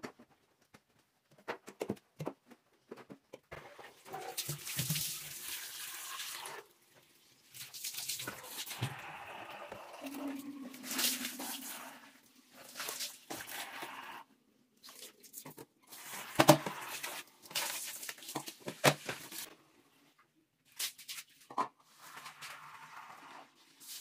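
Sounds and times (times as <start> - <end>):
water splashing: 4.0 - 6.7, 10.0 - 14.0
scrubbing on ceramic and tile: 10.0 - 14.0.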